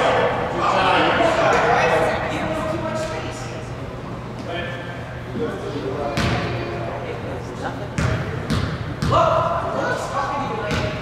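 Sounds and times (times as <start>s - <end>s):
murmuring voices echoing: 0.0s - 11.0s.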